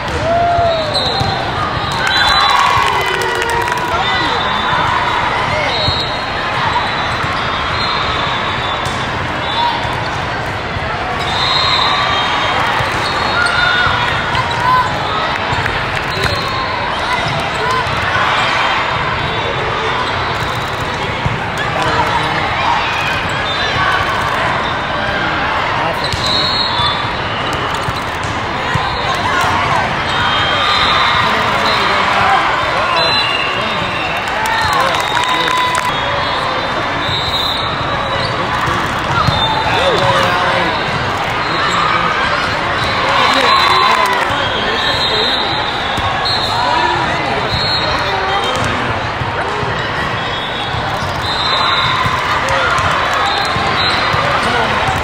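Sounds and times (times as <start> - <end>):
babble of many voices: 0.0 - 55.0
short high referee whistles: 5.6 - 6.2, 11.2 - 13.6, 26.0 - 28.1, 30.1 - 38.4, 42.8 - 48.5, 50.2 - 52.0
shoes squeaking on court: 26.0 - 29.1, 36.4 - 46.5, 49.7 - 51.9.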